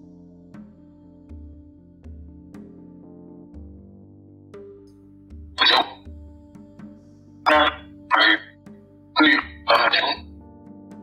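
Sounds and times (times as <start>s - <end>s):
soft ambient music: 0.0s - 11.0s
voice-like bursts: 5.6s - 6.0s, 7.5s - 8.5s, 9.2s - 10.2s.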